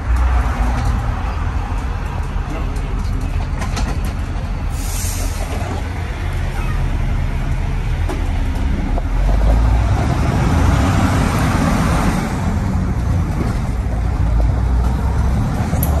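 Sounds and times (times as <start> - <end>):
diesel bus engine rumble: 0.0 - 16.0.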